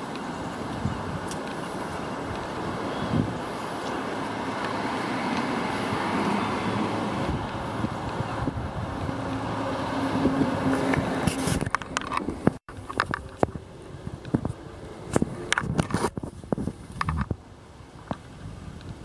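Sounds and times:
background traffic: 0.0s - 19.0s
wind on microphone: 0.0s - 19.0s.

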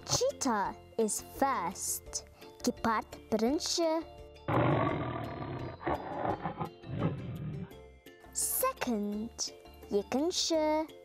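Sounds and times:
big cat roaring: 4.5s - 7.7s.

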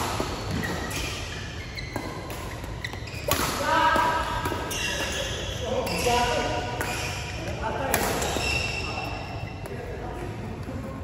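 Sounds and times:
racket hitting shuttlecock: 1.8s - 5.2s, 5.8s - 8.8s.

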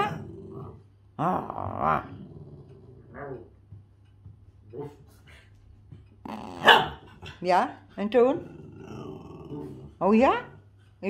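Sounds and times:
dog barking: 0.0s - 0.2s, 6.6s - 7.1s.

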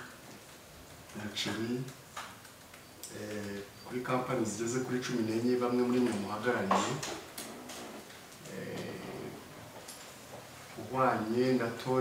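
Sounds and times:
faint clicks: 0.0s - 3.8s.

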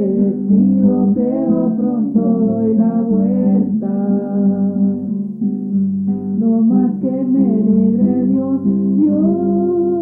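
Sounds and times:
folk song with guitar: 0.0s - 10.0s.

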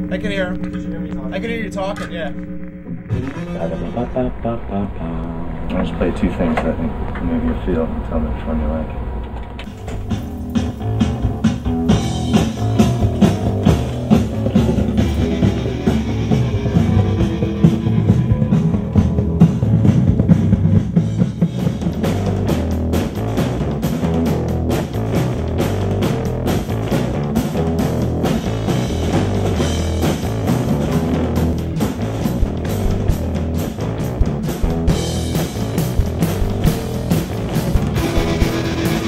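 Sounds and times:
guitar: 0.0s - 39.0s
rock music: 9.0s - 39.0s
drum kit beat: 9.7s - 39.0s.

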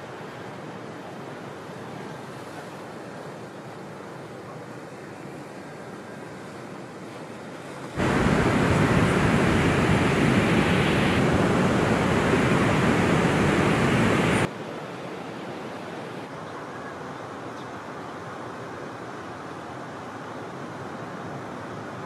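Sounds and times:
ocean waves breaking: 7.2s - 14.5s.

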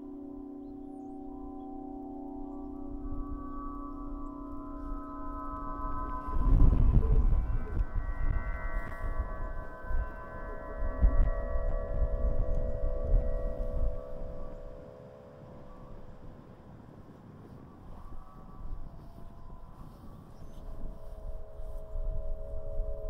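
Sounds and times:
wind harp ringing tones: 0.0s - 23.0s
wind buffeting microphone: 1.0s - 23.0s.

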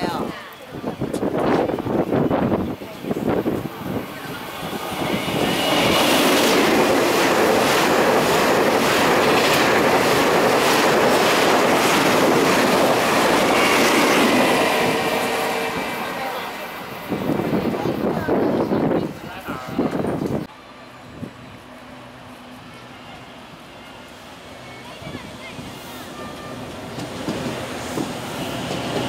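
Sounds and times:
train rumble: 0.0s - 29.0s.

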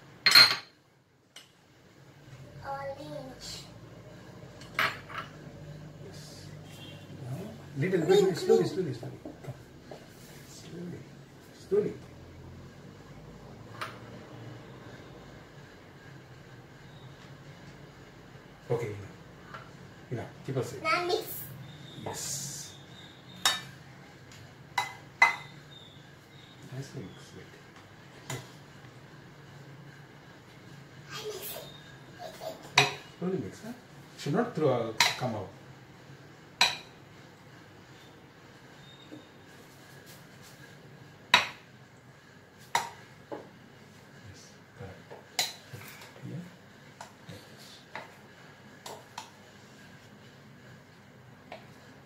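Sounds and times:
spoon clinking against a bowl: 24.8s - 25.6s.

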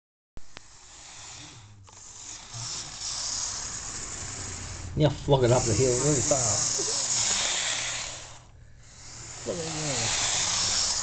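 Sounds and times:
model train motor whirring: 0.5s - 11.0s.

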